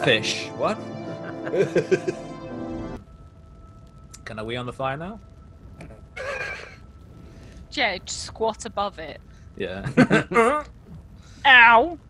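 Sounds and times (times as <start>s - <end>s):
faint steady hum: 0.0s - 12.0s
breathy laugh: 6.2s - 6.8s.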